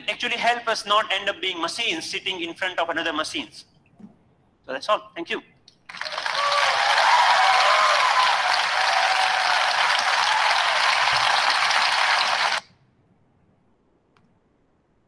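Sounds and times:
audience applauding: 0:05.9 - 0:12.6.

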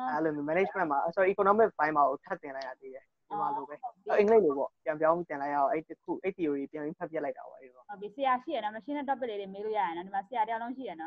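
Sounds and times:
man talking: 0:00.0 - 0:07.7.

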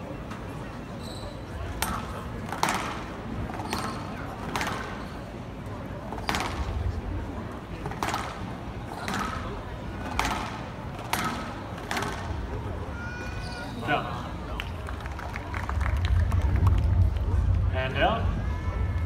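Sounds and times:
crowd noise: 0:00.0 - 0:19.0
squash ball cracks: 0:01.8 - 0:05.0, 0:06.2 - 0:06.8, 0:07.8 - 0:12.4
shoes squeaking on wooden floor: 0:03.6 - 0:04.1.

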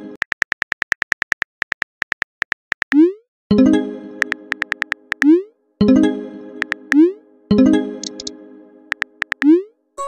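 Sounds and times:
phone keyboard typing clicks: 0:00.2 - 0:03.0, 0:04.2 - 0:05.3, 0:08.0 - 0:08.3, 0:08.9 - 0:09.5.

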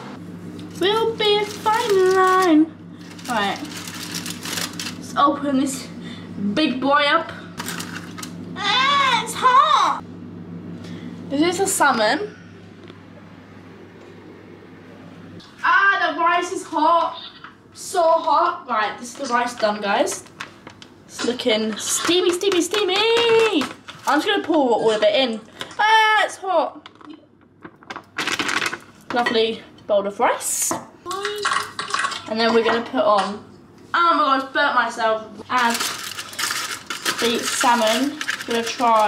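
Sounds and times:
steady low hum: 0:00.0 - 0:39.0
plastic pouch crinkling: 0:01.4 - 0:05.0, 0:07.6 - 0:08.3, 0:35.6 - 0:39.0.

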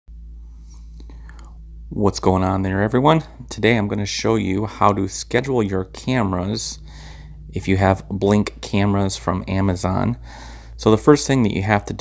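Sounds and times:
low electrical hum: 0:00.1 - 0:12.0
man speaking: 0:01.9 - 0:10.2, 0:10.8 - 0:12.0.

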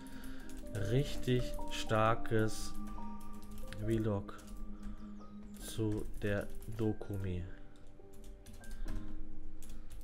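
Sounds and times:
background music: 0:00.0 - 0:10.0
computer keyboard typing: 0:00.0 - 0:10.0.

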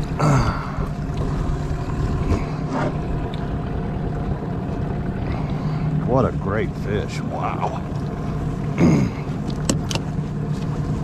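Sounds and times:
outboard motor humming: 0:00.0 - 0:11.0
water noise: 0:00.0 - 0:11.0
wind: 0:00.0 - 0:11.0.

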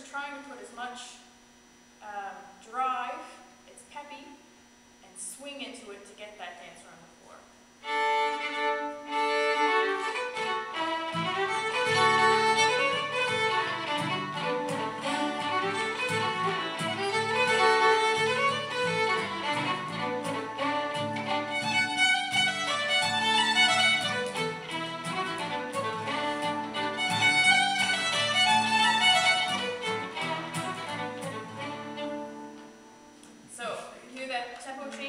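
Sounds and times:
fiddle playing folk tune: 0:07.8 - 0:32.8
acoustic guitar strumming: 0:07.9 - 0:33.4.

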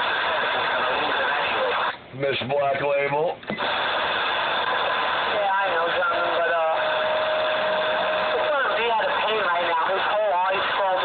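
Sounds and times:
garbled radio voices: 0:00.0 - 0:02.0, 0:02.6 - 0:11.0
steady radio whistle: 0:00.0 - 0:02.0, 0:03.5 - 0:11.0
radio static hiss: 0:00.0 - 0:11.0.

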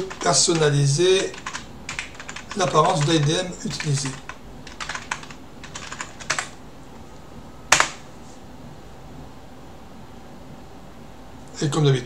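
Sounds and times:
computer keyboard typing: 0:00.0 - 0:06.6, 0:07.7 - 0:08.0.

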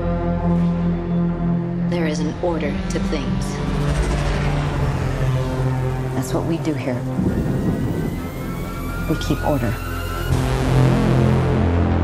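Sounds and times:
deep rumbling drone: 0:00.0 - 0:12.0
thin high rising tone: 0:03.9 - 0:10.5.

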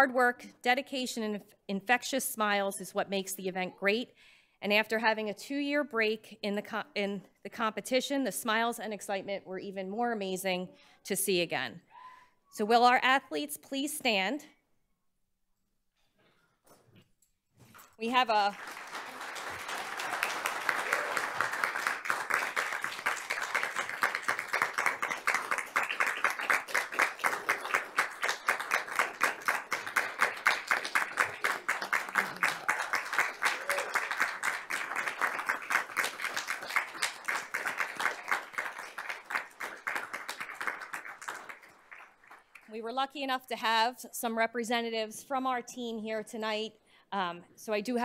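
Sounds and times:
audience applauding: 0:18.4 - 0:42.7.

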